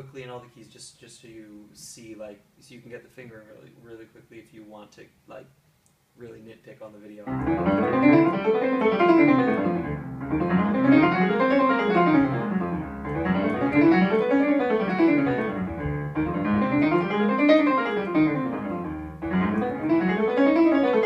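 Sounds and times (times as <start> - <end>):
piano scales played quickly: 7.3 - 21.0.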